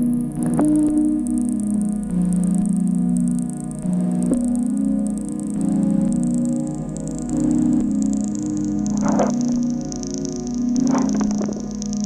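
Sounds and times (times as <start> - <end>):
low drone tones: 0.0 - 12.0.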